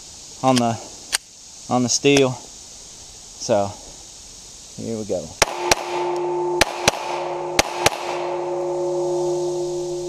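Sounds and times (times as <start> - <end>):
pistol shots: 5.4 - 8.4
steel target ringing: 5.4 - 10.0.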